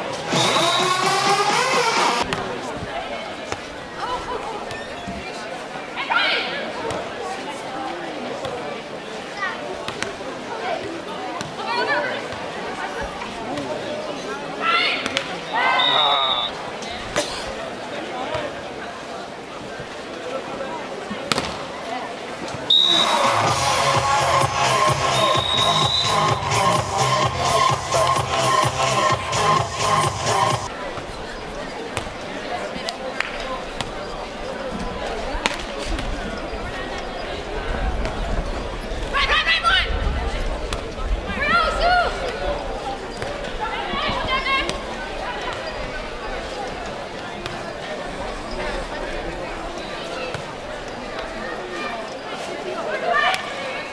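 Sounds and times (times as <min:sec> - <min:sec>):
background chatter: 0:00.0 - 0:53.9
loud electronic music: 0:00.3 - 0:02.2, 0:23.2 - 0:30.7.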